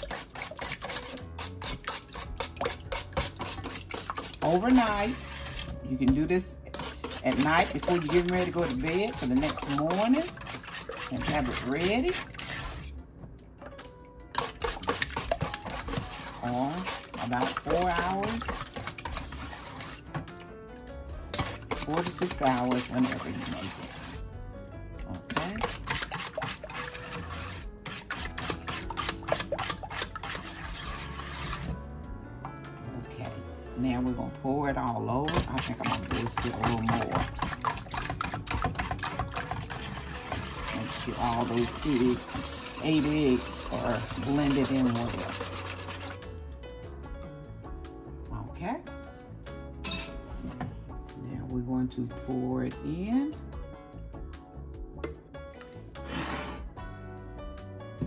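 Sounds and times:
whisk beating in metal bowl: 0.0s - 12.9s, 14.3s - 20.4s, 21.2s - 24.3s, 25.1s - 31.8s, 34.9s - 46.3s.

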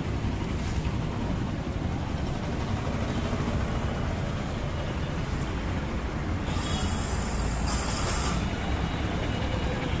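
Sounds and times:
street ambience low rumble: 0.0s - 10.0s.

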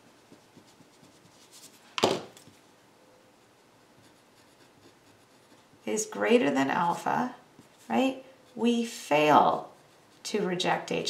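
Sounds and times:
pen scratching on paper: 0.1s - 1.8s, 3.5s - 6.0s.

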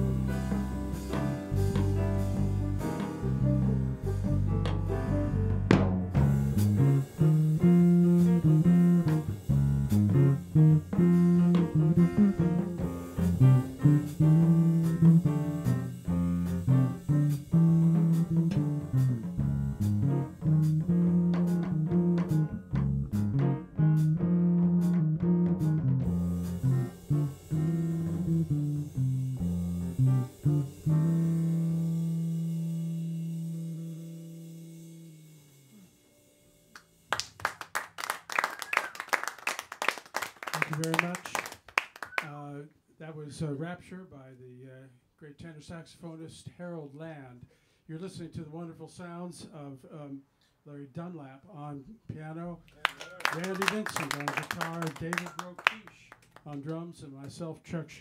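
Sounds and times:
jazz quartet playing: 0.0s - 36.7s
people clapping: 36.8s - 42.3s, 52.7s - 57.4s.

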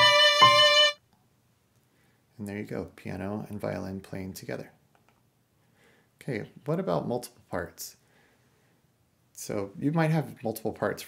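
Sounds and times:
piano: 0.0s - 1.0s
violin holding a note: 0.0s - 1.0s.

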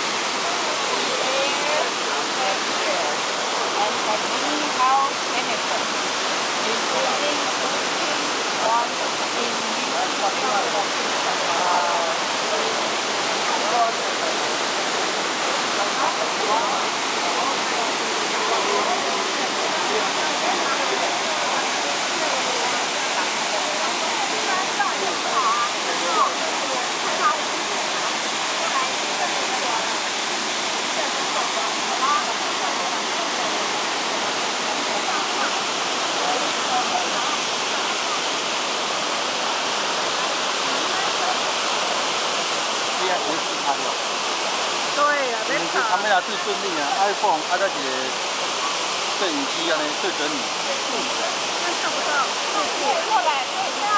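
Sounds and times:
waterfall rushing: 0.0s - 53.9s.

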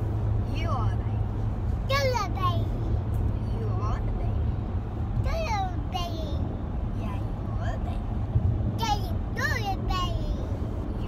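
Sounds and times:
car road rumble: 0.0s - 11.0s
child's voice: 1.8s - 2.9s, 5.2s - 8.1s, 8.8s - 11.0s.

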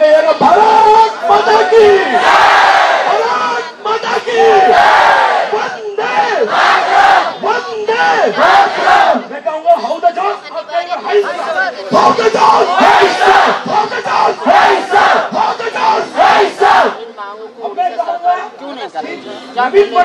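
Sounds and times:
protest crowd shouting: 0.0s - 20.0s.

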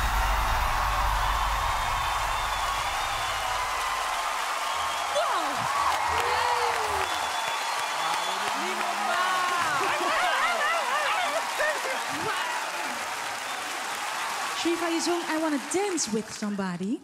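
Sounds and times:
whoops: 0.0s - 15.4s
audience applauding and cheering: 0.0s - 17.0s.

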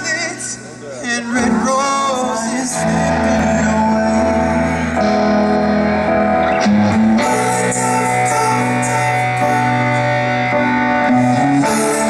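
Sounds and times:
man singing: 0.0s - 5.5s, 6.9s - 12.0s
bass guitar: 0.0s - 12.0s
electric guitar: 0.0s - 12.0s.

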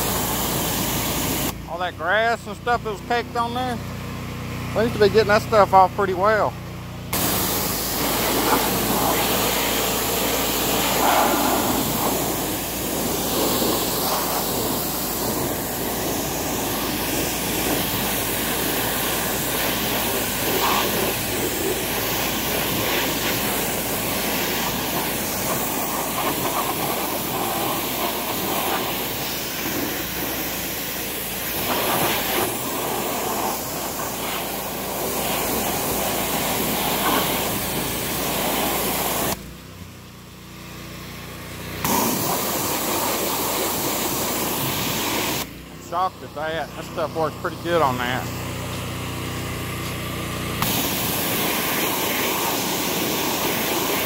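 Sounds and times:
pressure washer spraying: 0.0s - 1.8s, 7.1s - 39.4s, 41.7s - 54.0s.

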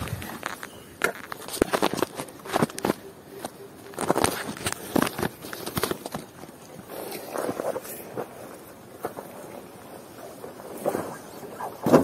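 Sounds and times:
phone handled among dirt clods: 0.0s - 8.3s.

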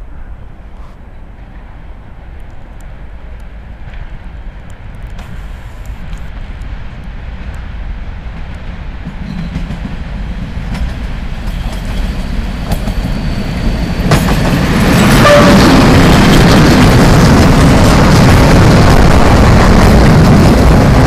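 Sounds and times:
freight train passing: 0.0s - 21.0s.

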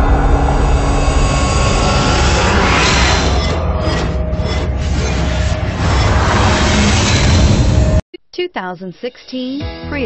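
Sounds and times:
cinematic whoosh: 0.0s - 8.0s.

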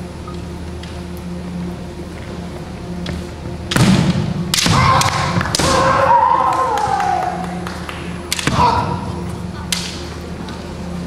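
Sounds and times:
bamboo sword strikes: 3.7s - 5.9s.

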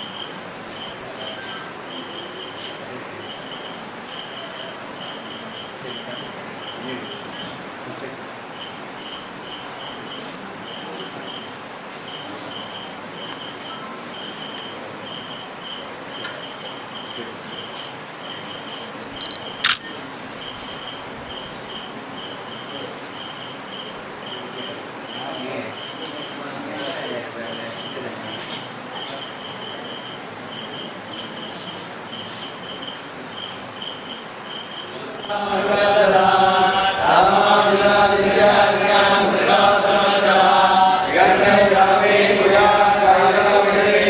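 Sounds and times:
camera focus beeps: 19.2s - 20.0s
camera shutter click: 19.6s - 19.9s
priests chanting a hymn: 35.0s - 44.0s.

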